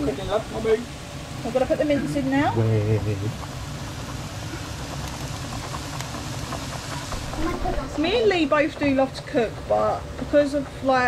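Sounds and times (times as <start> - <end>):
extractor fan humming: 0.0 - 11.0.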